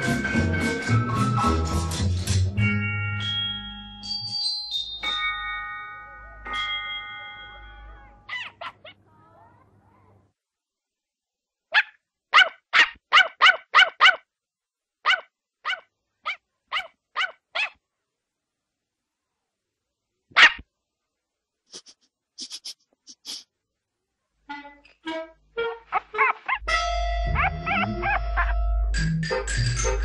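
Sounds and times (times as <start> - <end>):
cartoon puppy yapping: 8.2 - 9.0, 11.7 - 14.2, 15.0 - 17.8, 20.3 - 20.6, 25.8 - 26.7, 27.3 - 28.7.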